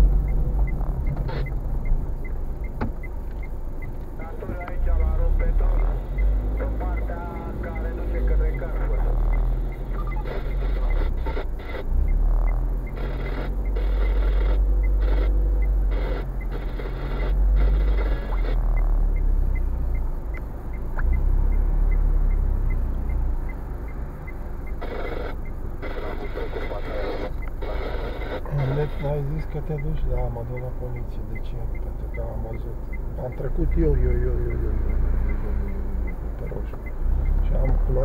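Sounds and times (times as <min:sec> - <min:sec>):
car engine rumble: 0:00.0 - 0:38.0
faint regular ticking: 0:00.0 - 0:38.0
traffic passing: 0:00.0 - 0:38.0.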